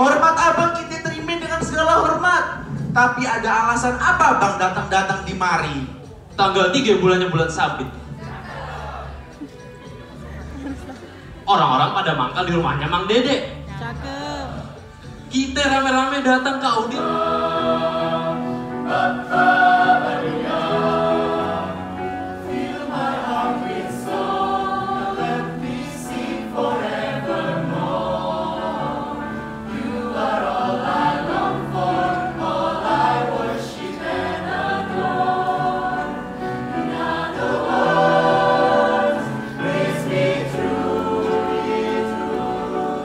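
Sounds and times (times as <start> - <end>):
mixed choir singing: 7.8 - 11.5, 13.5 - 15.3, 16.5 - 43.0.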